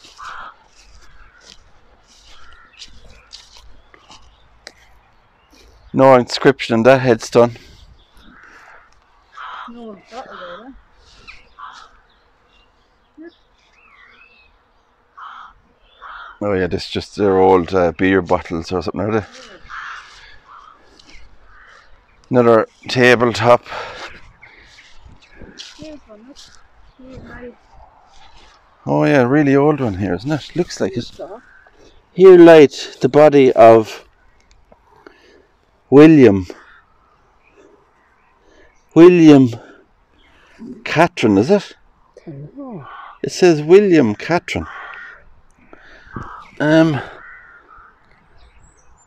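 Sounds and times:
bird calling: 0.0 - 6.0, 7.4 - 16.5, 18.4 - 32.4, 33.1 - 49.0
woman speaking: 9.7 - 10.8, 19.2 - 19.7, 25.8 - 26.4, 27.0 - 27.6.

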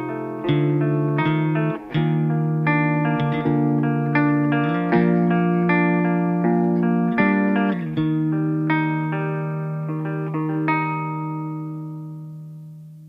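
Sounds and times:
electric guitar chord ringing: 0.0 - 13.0.

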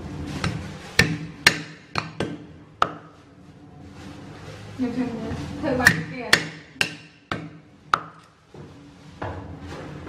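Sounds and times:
cleaver chopping on wooden board: 1.0 - 3.1, 5.8 - 8.2.

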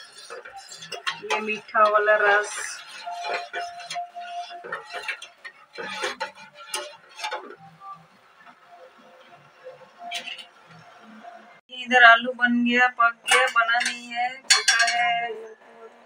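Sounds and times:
metal spoon stirring a steel pot: 0.0 - 8.1, 13.3 - 15.3.

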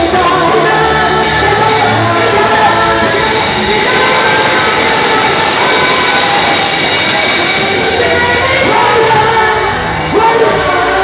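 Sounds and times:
distorted live church band: 0.0 - 11.0.

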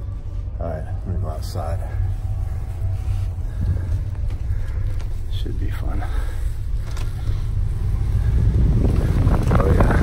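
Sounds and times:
fabric rubbing on microphone: 0.0 - 4.3
ship engine rumble: 0.0 - 10.0
wind buffeting microphone: 6.6 - 10.0.

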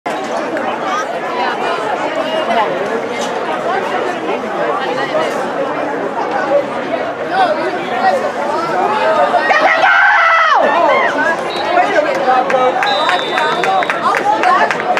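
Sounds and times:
crowd babble: 0.0 - 14.9.

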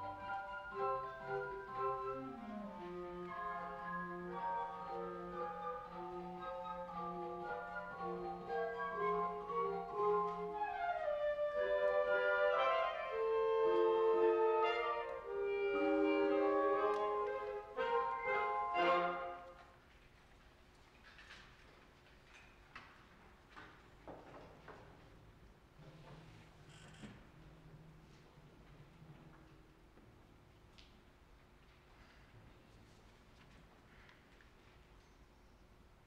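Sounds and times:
orchestra of strings and winds: 0.0 - 19.6.

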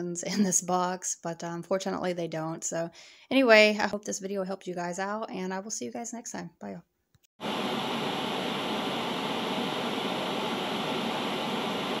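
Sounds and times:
white noise hiss: 7.4 - 12.0.

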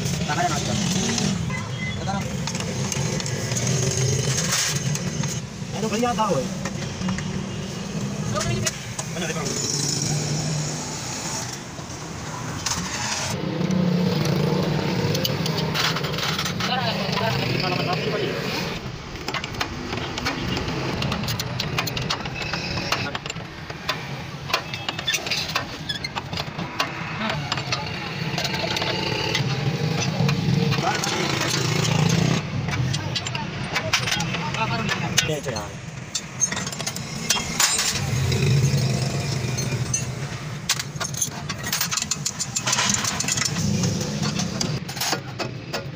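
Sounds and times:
people talking: 16.6 - 18.6, 27.2 - 32.0, 32.7 - 35.8.

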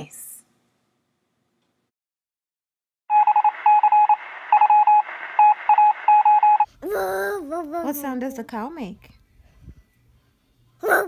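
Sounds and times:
electronic beeping: 3.1 - 6.7.

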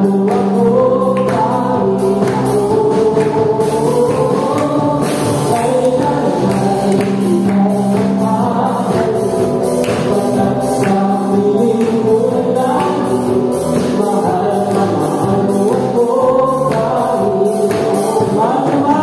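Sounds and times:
acoustic guitar: 0.0 - 19.0
drum kit with cymbal strokes: 0.0 - 19.0
electric bass: 0.0 - 19.0
keyboard: 0.0 - 19.0
voices singing together: 0.0 - 19.0.

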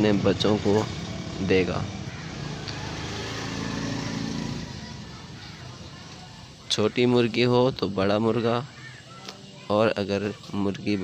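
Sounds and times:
vehicle engine humming: 0.0 - 7.5.

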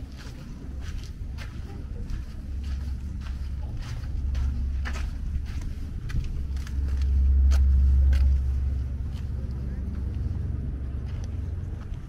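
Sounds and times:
footsteps on stone paving: 0.0 - 12.0
low rumble: 0.0 - 12.0.

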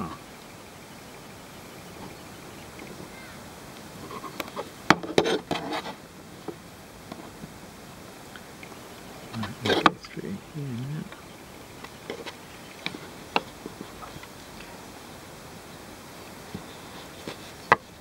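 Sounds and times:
rope rustling and creaking: 4.0 - 7.4.

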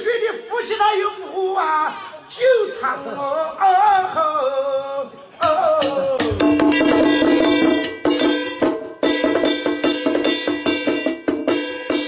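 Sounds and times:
person singing: 0.0 - 7.0
metallic percussion struck with sticks: 6.2 - 12.0.

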